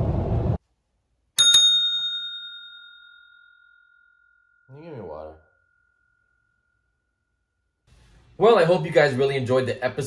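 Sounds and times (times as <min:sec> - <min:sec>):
service bell ding: 0:01.4 - 0:04.8.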